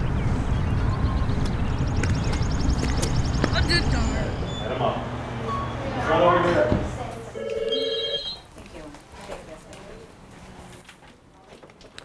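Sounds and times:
telephone ringing: 7.4 - 8.5.

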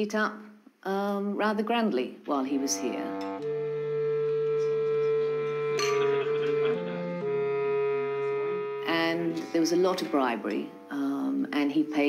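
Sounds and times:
held music note: 2.2 - 12.0.

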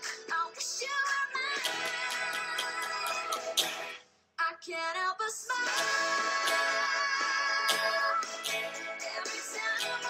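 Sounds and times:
hi-hat beat: 1.1 - 3.8, 5.7 - 6.8, 7.7 - 10.0
woman singing over backing track: 4.4 - 10.0.

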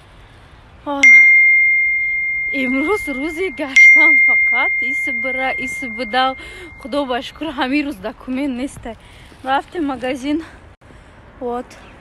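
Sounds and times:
bright bell ding: 1.0 - 7.1.

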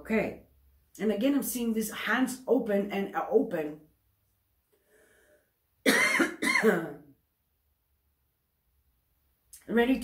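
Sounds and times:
woman coughing: 5.8 - 7.1.

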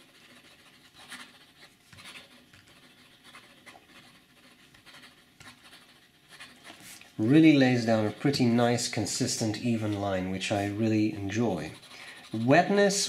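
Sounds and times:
pen nib scratching on paper: 0.0 - 13.0.

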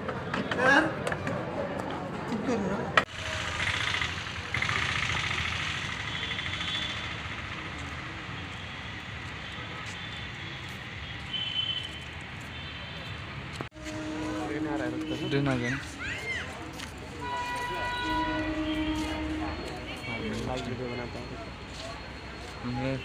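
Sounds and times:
road traffic noise: 0.0 - 23.0.

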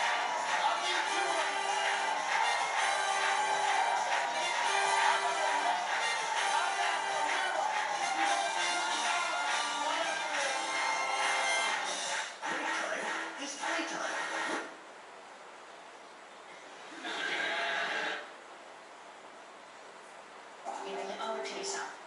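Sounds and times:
television music with singing: 0.0 - 14.8, 16.8 - 18.3.

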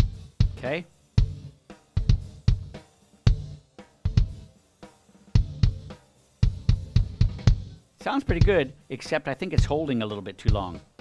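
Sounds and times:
snare drum: 0.0 - 11.0
kick drum hits: 5.4 - 7.7, 8.3 - 8.6.

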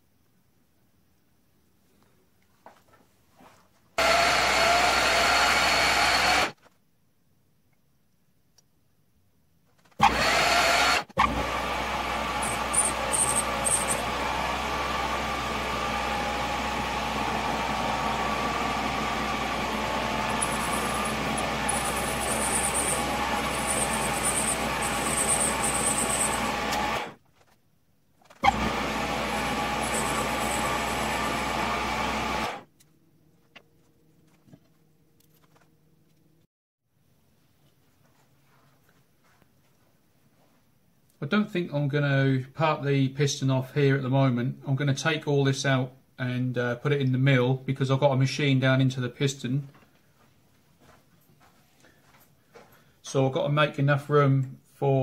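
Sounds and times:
metal lathe cutting aluminium: 4.0 - 6.5, 10.0 - 27.2, 28.4 - 32.6.

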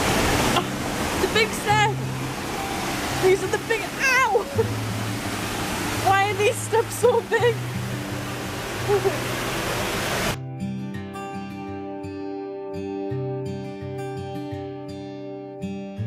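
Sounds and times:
waterfall rushing: 0.0 - 10.4.

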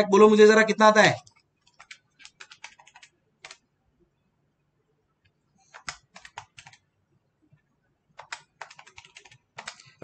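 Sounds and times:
computer keyboard key taps: 1.3 - 3.6, 5.2 - 6.8, 8.2 - 9.9.

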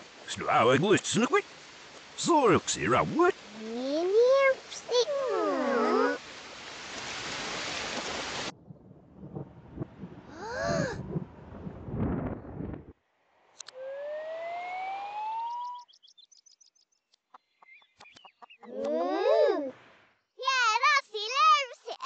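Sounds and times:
rain hiss: 0.0 - 8.5
low rumble: 8.5 - 13.0
rising whistle-like tone: 13.6 - 16.0.

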